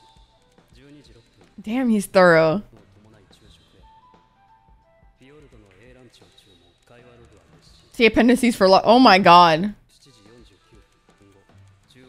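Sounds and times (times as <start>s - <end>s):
woman speaking loudly: 1.6s - 2.6s, 8.0s - 9.7s.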